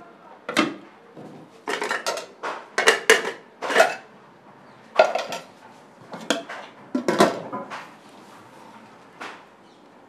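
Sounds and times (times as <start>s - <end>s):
plates and pots clattering: 0.5s - 4.1s, 4.9s - 7.9s.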